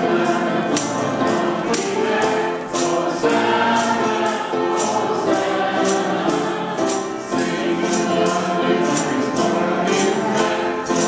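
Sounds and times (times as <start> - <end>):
choir singing a hymn: 0.0 - 11.0
tambourine struck: 0.0 - 11.0.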